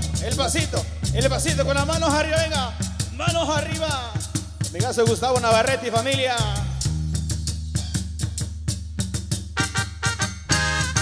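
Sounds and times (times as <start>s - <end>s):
electric bass line: 0.0s - 4.1s, 6.4s - 11.0s
drum kit fast beat: 0.0s - 11.0s.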